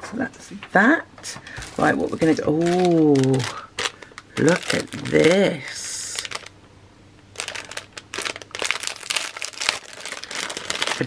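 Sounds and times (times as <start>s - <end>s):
cellophane bag crinkling: 1.6s - 6.5s, 7.4s - 11.0s.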